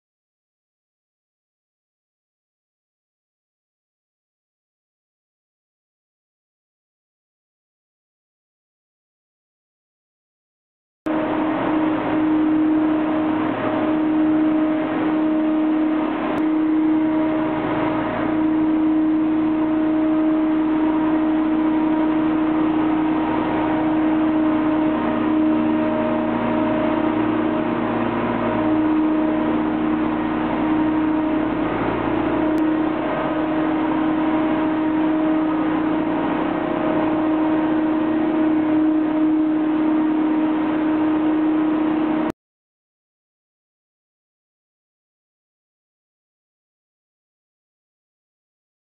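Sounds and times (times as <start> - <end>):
truck engine and brush machinery: 11.1 - 42.3.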